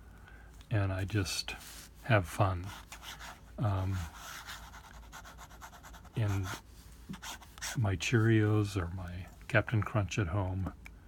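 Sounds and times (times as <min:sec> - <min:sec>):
pen nib scratching on paper: 0:02.7 - 0:07.8.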